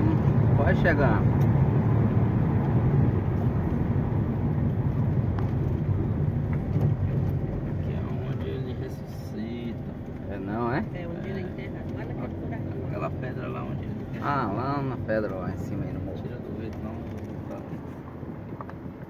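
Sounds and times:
car engine pulling uphill: 0.0 - 19.0.

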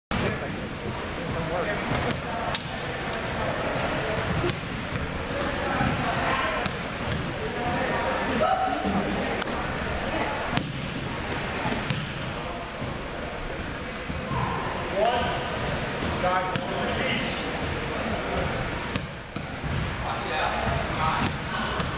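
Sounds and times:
murmur of voices: 0.1 - 21.9.

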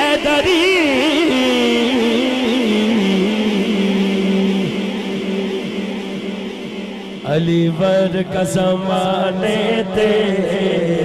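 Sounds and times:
man singing long note with echo: 0.0 - 11.0.

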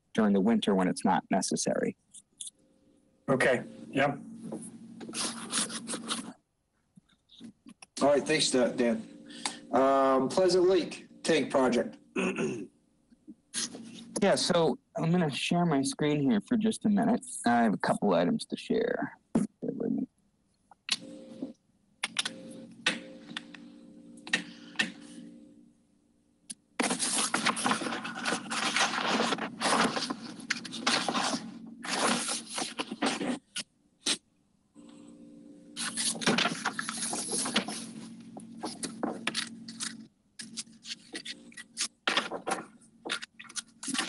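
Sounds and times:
faint steady hum: 0.0 - 44.0.

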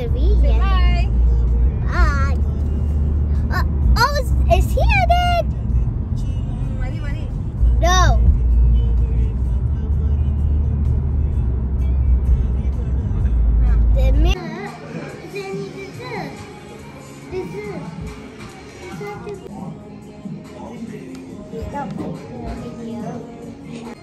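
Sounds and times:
car cabin road noise: 0.0 - 14.4.

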